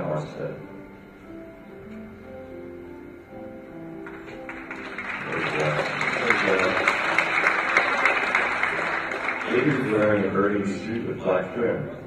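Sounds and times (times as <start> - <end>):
audience applauding and cheering: 4.0 - 10.8.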